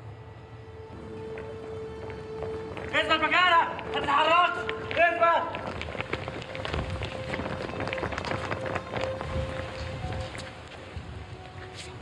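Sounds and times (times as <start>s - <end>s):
dramatic music sustained note: 0.0s - 12.0s
people running footfalls: 0.9s - 12.0s.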